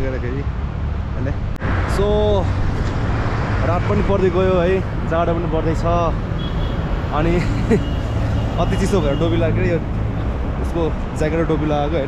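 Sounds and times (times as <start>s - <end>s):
road traffic rumble: 0.0s - 12.0s
man speaking: 7.1s - 7.9s, 8.5s - 9.9s, 10.6s - 12.0s.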